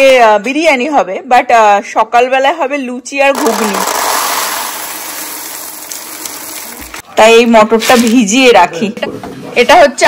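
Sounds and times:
dried peas pouring into plastic bowl: 0:03.3 - 0:07.0.

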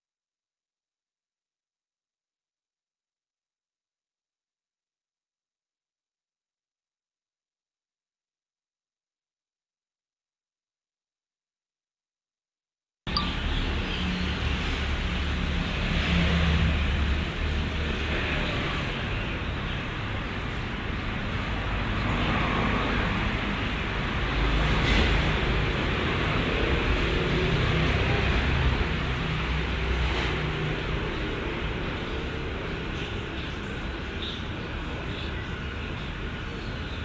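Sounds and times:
distant road traffic rumble: 0:13.1 - 0:37.0.

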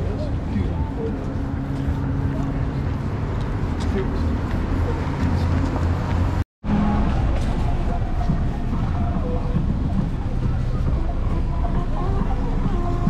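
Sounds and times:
road traffic engine hum: 0:00.0 - 0:13.0.

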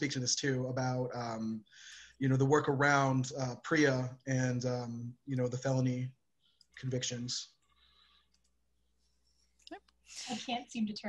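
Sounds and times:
short voice sound: 0:00.0 - 0:01.6, 0:02.2 - 0:06.1, 0:06.8 - 0:07.4
faint clicks: 0:07.6 - 0:08.6.

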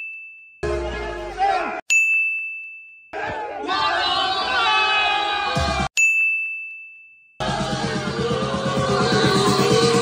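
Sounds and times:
bell-like ding: 0:00.0 - 0:01.3, 0:01.9 - 0:03.1, 0:06.0 - 0:07.4
party music: 0:00.6 - 0:01.8, 0:07.4 - 0:10.0.

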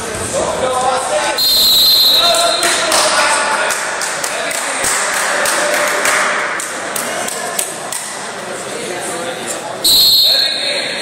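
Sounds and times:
referee's whistle blast: 0:01.4 - 0:02.8, 0:09.9 - 0:10.9.

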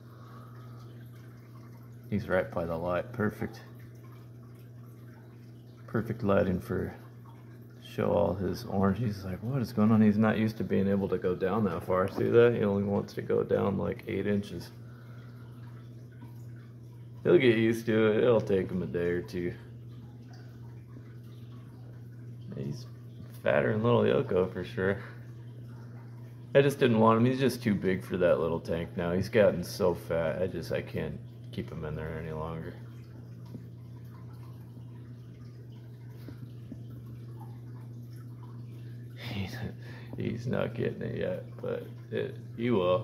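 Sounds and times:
air pump humming: 0:00.0 - 0:43.0
water bubbling and dripping: 0:00.0 - 0:43.0.

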